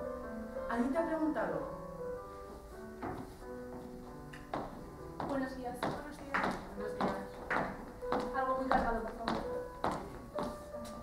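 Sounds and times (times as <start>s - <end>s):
high-heeled footsteps on wooden floor: 2.5s - 11.0s.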